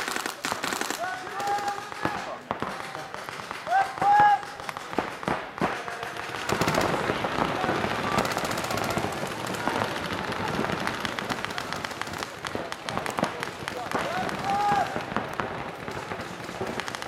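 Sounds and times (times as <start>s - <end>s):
paintball markers firing rapidly: 0.0s - 17.0s.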